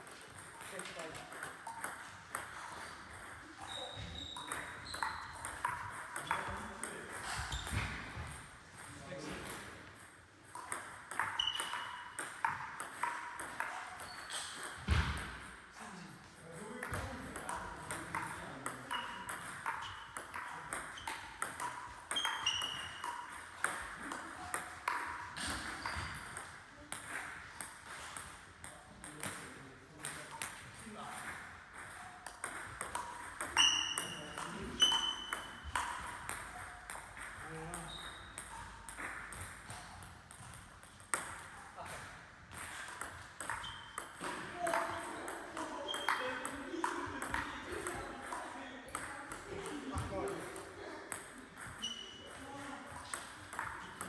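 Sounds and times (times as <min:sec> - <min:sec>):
ping pong ball bouncing on table: 0:00.0 - 0:15.6, 0:16.6 - 0:54.0
ping pong ball hitting rackets: 0:00.0 - 0:15.6, 0:16.5 - 0:54.0.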